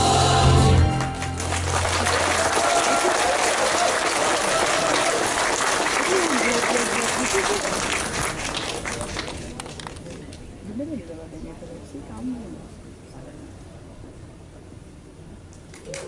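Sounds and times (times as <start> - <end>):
audience applause: 1.0 - 10.2.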